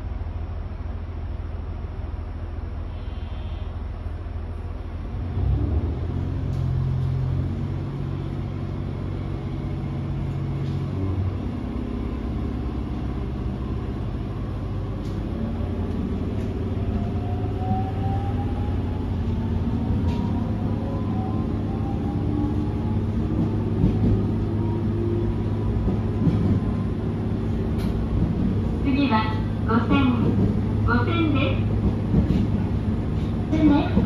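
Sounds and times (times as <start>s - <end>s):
diesel engine rumble: 0.0s - 34.0s.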